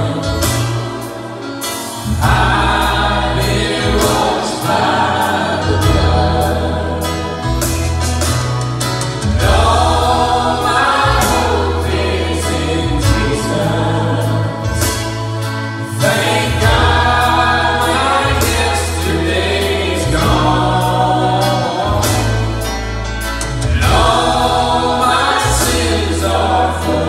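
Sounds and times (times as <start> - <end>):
group singing worship song: 0.0 - 27.0
live band with keyboard: 0.0 - 27.0.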